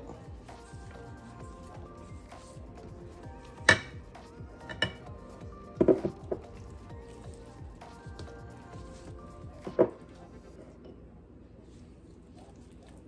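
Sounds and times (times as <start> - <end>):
soft background music: 0.0 - 11.2
ceramic dishware clinking: 3.6 - 4.0, 4.6 - 5.1.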